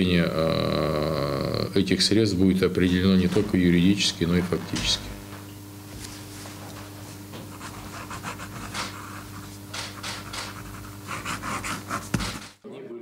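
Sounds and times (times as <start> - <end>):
low electrical hum: 0.0 - 13.0
pen scratching on paper: 7.5 - 12.6.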